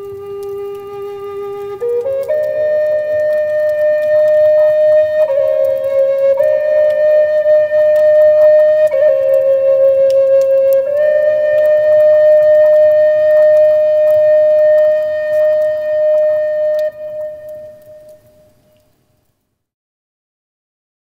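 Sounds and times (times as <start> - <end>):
flute-like long notes: 0.0 - 18.9.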